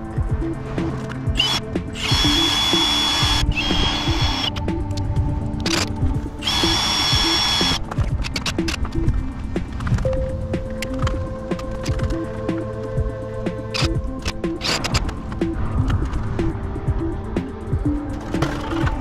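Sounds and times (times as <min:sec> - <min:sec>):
background music: 0:00.0 - 0:19.0
cordless drill whining: 0:01.4 - 0:04.6, 0:06.4 - 0:07.8.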